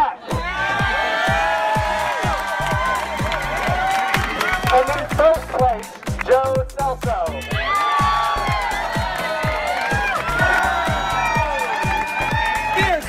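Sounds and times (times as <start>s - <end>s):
crowd cheering and clapping: 0.0s - 6.5s, 7.3s - 13.0s
music with thumping beat: 0.3s - 13.0s.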